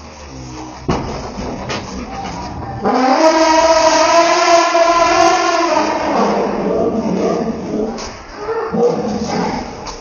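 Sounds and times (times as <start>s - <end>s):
elephant trumpeting: 1.2s - 9.8s.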